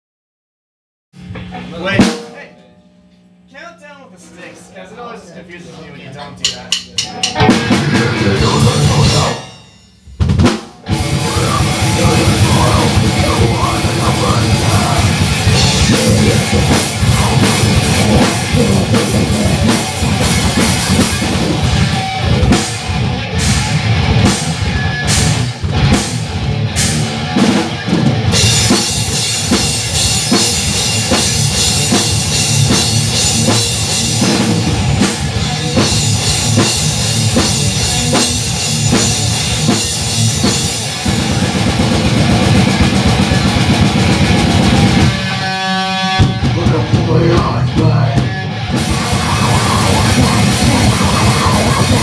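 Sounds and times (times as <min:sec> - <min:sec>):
drum kit with crashing cymbals: 0:01.2 - 0:02.6, 0:06.4 - 0:52.0
distorted electric guitar: 0:07.0 - 0:52.0
single ringing pitched note: 0:09.2 - 0:10.1.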